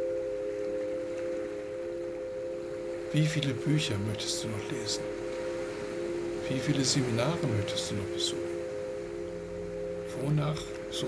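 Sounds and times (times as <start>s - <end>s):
meditative tonal drone: 0.0s - 11.0s.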